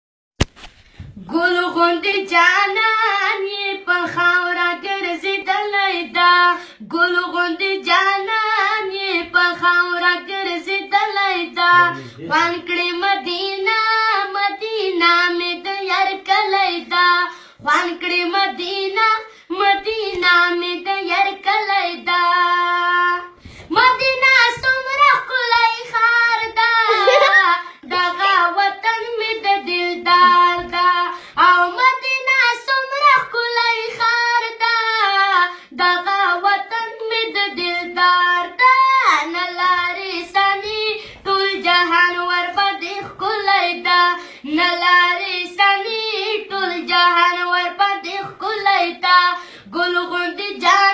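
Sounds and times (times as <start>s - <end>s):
boy singing unaccompanied: 1.2s - 50.9s
short breaths: 12.0s - 12.3s, 17.3s - 17.6s, 23.4s - 23.7s, 31.1s - 31.4s, 41.0s - 41.2s, 44.2s - 44.5s, 49.4s - 49.7s.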